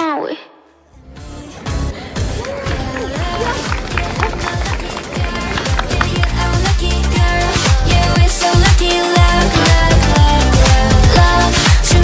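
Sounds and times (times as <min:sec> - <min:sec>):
electronic dance-pop music: 0:01.1 - 0:12.0.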